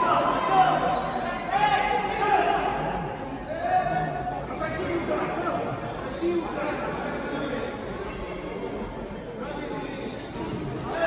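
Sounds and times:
voices calling out with echo: 0.0s - 11.0s.

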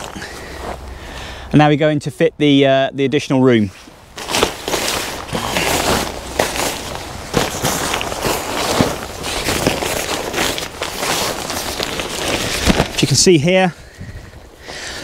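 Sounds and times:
tent fabric rustling and crinkling: 0.0s - 0.9s, 3.5s - 15.0s.

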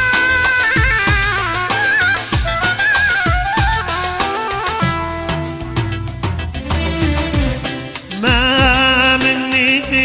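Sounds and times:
percussion beat: 0.0s - 10.0s
sliding bass line: 0.0s - 10.0s.

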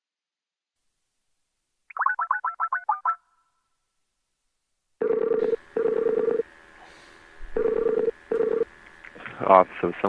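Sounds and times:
telephone ringing tone: 5.0s - 6.4s, 7.6s - 8.7s.

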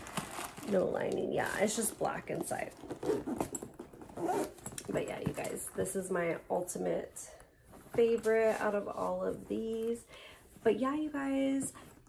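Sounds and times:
backpack zipping and rustling: 0.0s - 1.9s, 2.5s - 5.5s.

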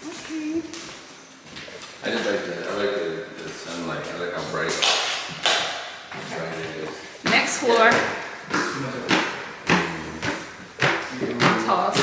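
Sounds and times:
footsteps on wooden stairs: 5.3s - 12.0s.

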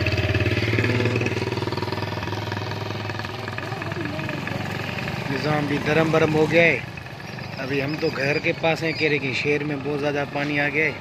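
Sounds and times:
small motorcycle engine running: 0.0s - 11.0s.

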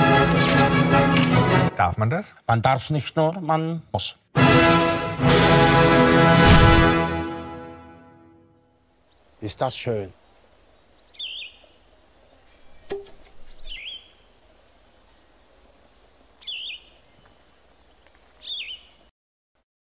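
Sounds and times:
faint outdoor ambience: 8.4s - 19.1s
bird chirping call: 8.5s - 15.4s, 16.4s - 17.4s, 18.3s - 19.7s.

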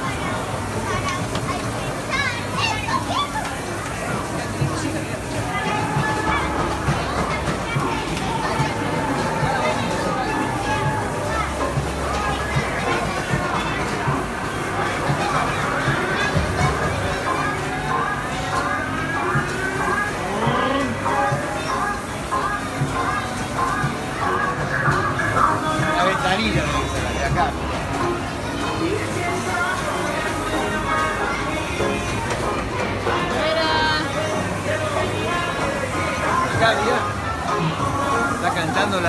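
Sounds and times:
amusement arcade background noise: 0.0s - 39.0s
chatter of many voices: 0.0s - 39.0s.

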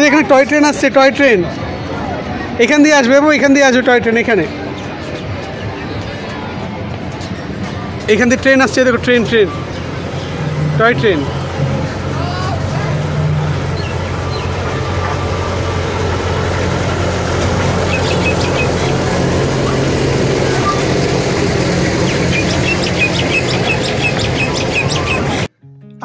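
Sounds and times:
toy train engine hum: 12.3s - 25.5s.

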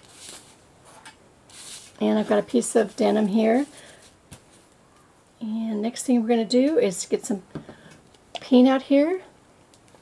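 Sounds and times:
fabric rustling: 0.0s - 4.8s.

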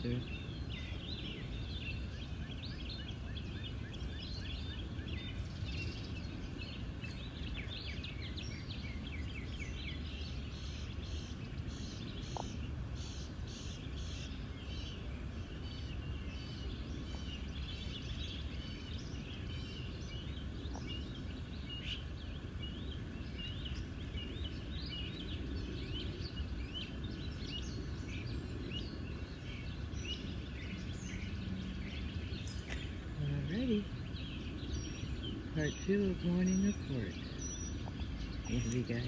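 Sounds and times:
low background rumble: 0.0s - 39.0s
small birds chirping: 0.0s - 39.0s.

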